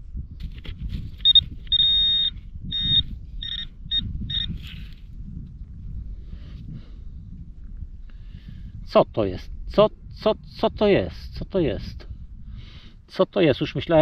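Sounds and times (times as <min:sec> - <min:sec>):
soil and stubble rustling: 0:00.3 - 0:08.1
metal detector beeping: 0:01.2 - 0:04.8.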